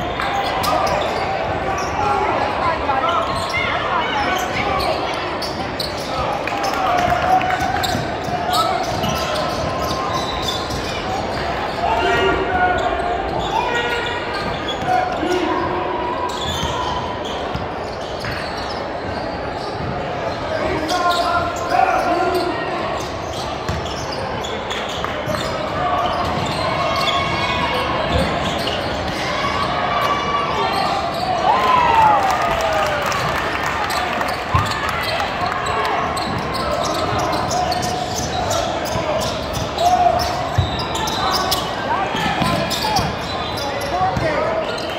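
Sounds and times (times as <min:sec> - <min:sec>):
voices of players and spectators: 0:00.0 - 0:44.9.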